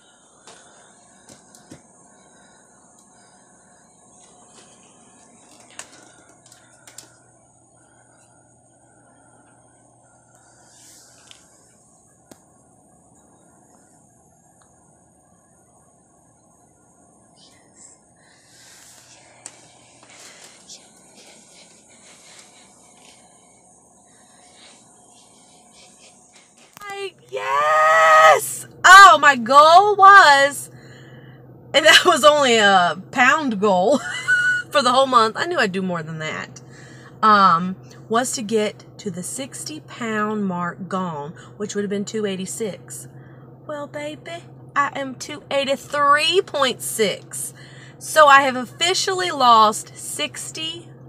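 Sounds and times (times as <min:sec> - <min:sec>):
steady high hiss: 0:00.0 - 0:30.7
woman yelling: 0:26.8 - 0:30.6.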